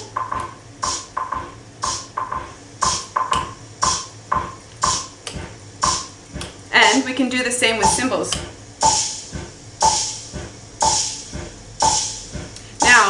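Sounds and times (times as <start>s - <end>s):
drum machine wood-block clicks: 0.0s - 6.6s, 7.8s - 13.0s
hissing cymbal-like accent: 0.8s - 5.1s, 5.8s - 13.0s.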